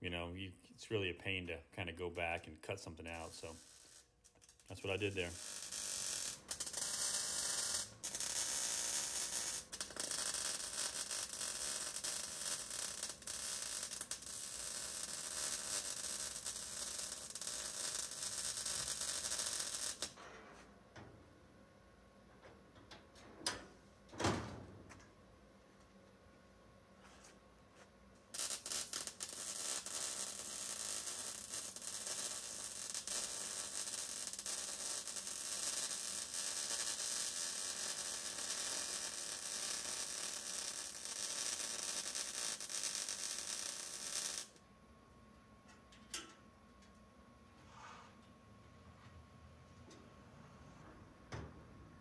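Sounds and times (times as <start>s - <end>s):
welder arc crackling: 2.2s - 20.2s, 28.3s - 44.6s.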